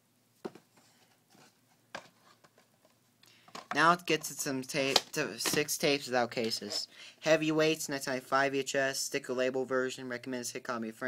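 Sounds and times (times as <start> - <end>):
small handling noises: 0.4 - 6.9.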